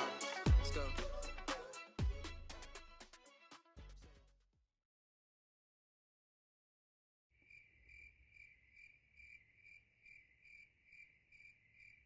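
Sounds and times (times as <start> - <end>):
faint cricket chirping: 7.4 - 12.0.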